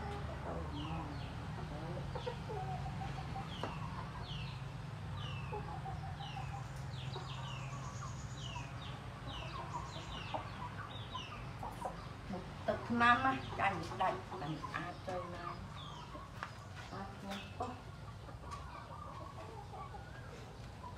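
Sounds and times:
chicks peeping: 0.0 - 20.9.

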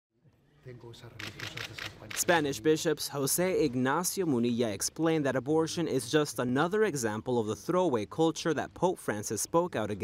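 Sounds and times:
rapid camera shutter clicks: 1.2 - 2.4.

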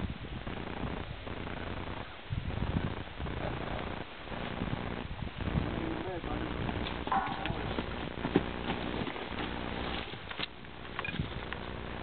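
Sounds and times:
hoof steps on dirt: 6.8 - 12.0.

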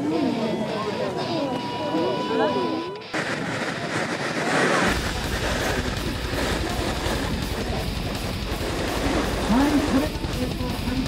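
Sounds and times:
deep rumble: 3.2 - 11.0.

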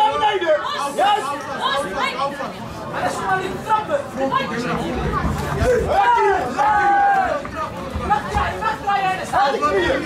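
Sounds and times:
crowd chattering in a hall: 0.0 - 10.0.

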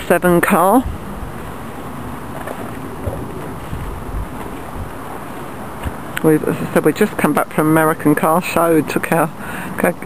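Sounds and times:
wind buffeting microphone: 0.2 - 9.2.

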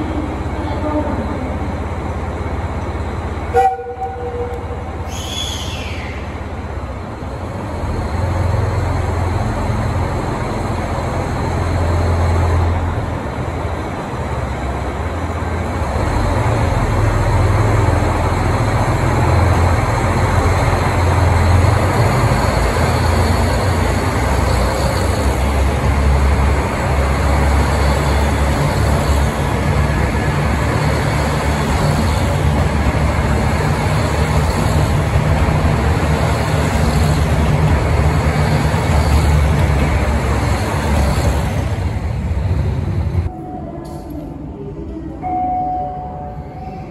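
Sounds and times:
diesel train rumbling past: 0.0 - 45.3.

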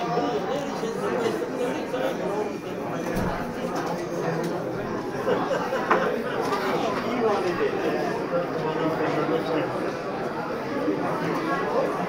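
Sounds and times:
hubbub of overlapping voices: 0.0 - 12.0.

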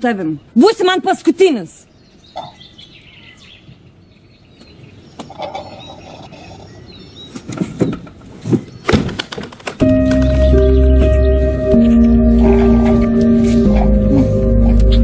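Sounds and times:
birds chirping: 0.0 - 15.0
sharp knocks and thumps: 7.3 - 10.4.

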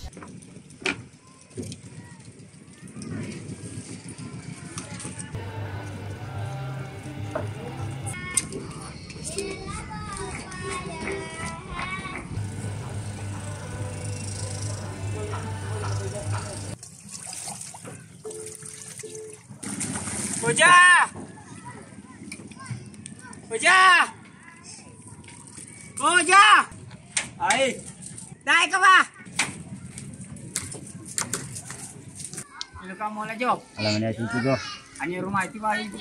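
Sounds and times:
outdoor background noise: 0.0 - 36.0
background music: 5.4 - 8.2
sea water lapping around boats: 5.4 - 8.2, 12.3 - 22.0
two-note hum: 5.4 - 8.2, 12.3 - 16.8.

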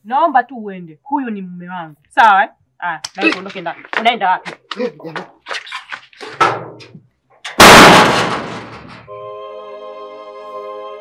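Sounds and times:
very loud bang: 7.5 - 9.1.

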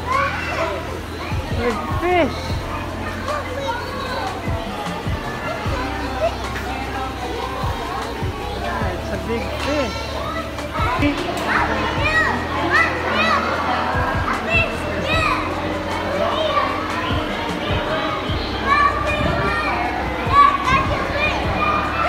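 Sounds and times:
children chattering and calling out: 0.0 - 22.0
steady low hum: 0.0 - 22.0.

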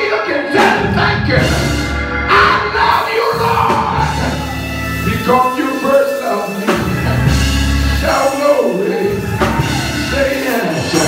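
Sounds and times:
loud live church music: 0.0 - 11.0
man singing and shouting: 0.0 - 11.0.

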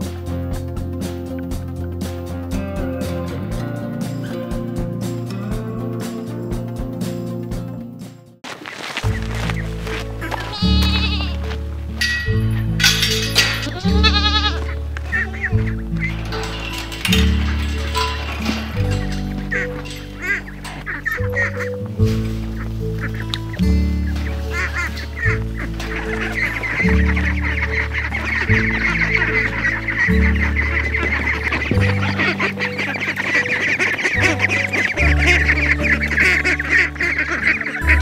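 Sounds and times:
music with slow low chords: 0.0 - 8.4, 9.1 - 38.0
ducks quacking: 8.5 - 38.0.

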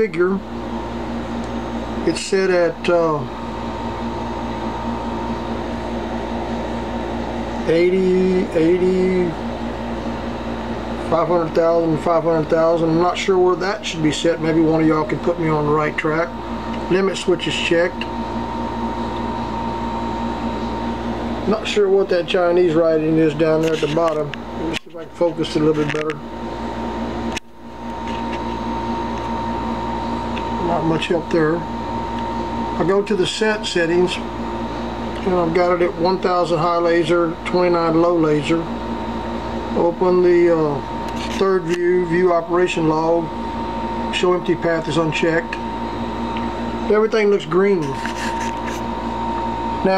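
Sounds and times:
steady mechanical hum: 0.0 - 49.9
thin high whine: 0.0 - 49.9.

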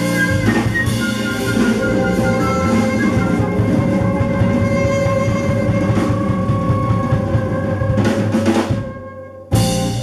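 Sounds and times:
drum roll: 0.0 - 10.0
live blues band playing: 0.0 - 10.0
saxophone and flute long note: 0.0 - 10.0.

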